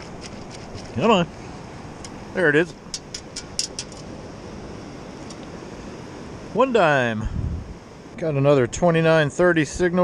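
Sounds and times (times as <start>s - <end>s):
metal scoop rattling: 0.0s - 1.1s, 2.9s - 4.1s.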